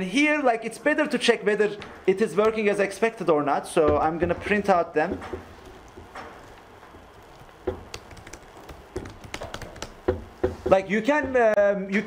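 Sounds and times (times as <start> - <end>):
laptop keyboard typing: 5.6 - 10.8.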